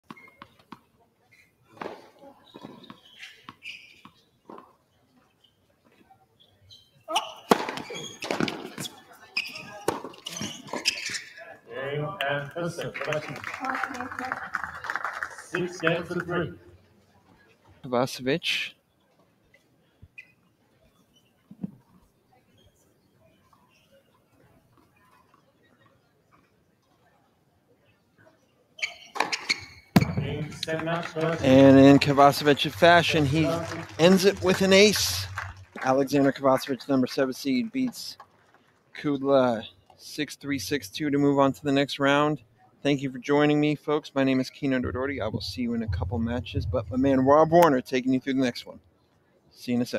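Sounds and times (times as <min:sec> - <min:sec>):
tennis ball bouncing: 0:07.4 - 0:08.9, 0:09.6 - 0:10.8
man's voice: 0:30.2 - 0:36.7, 0:44.5 - 0:47.9.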